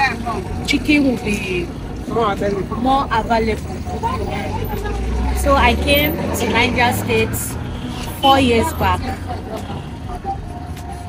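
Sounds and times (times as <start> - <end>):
faint distant voices: 0.0 - 11.0
low rumble of traffic: 0.0 - 11.0.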